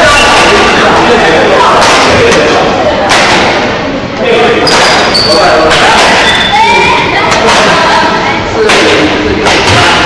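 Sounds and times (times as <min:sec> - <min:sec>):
voices of players and onlookers: 0:00.0 - 0:10.0
shoe squeaks: 0:04.6 - 0:07.0.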